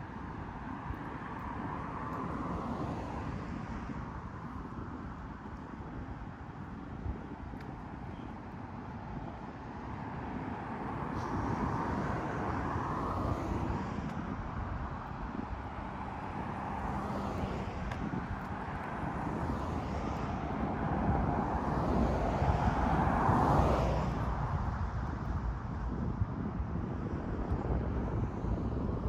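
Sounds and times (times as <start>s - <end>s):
cars driving past: 9.9s - 25.8s.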